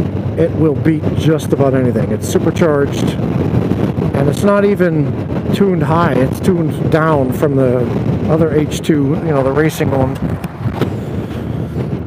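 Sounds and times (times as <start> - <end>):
motorcycle road noise: 0.0 - 12.0
wind rush: 0.0 - 12.0.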